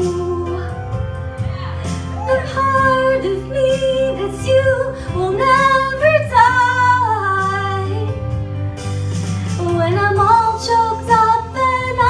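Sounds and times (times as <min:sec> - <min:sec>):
woman singing into a microphone: 0:00.0 - 0:01.2, 0:01.9 - 0:08.2, 0:09.6 - 0:12.0.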